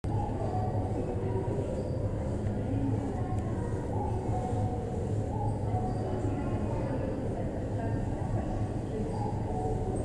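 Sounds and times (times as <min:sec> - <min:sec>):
low rumble on subway platform: 0:00.0 - 0:10.0.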